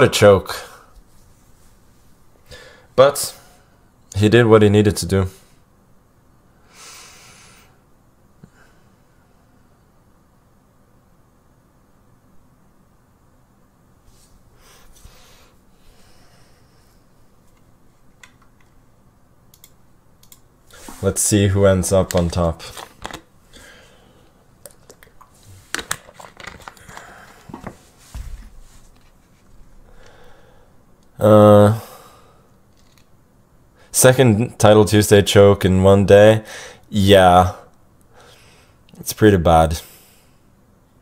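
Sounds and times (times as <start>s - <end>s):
man sighing: 2.5s - 2.9s, 29.9s - 30.7s
plastic bottle crinkling: 24.7s - 27.8s.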